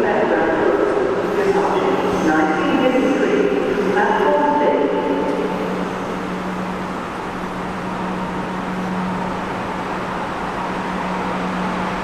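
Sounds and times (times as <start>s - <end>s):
electric train rushing: 0.0s - 12.0s
low train hum: 0.0s - 12.0s.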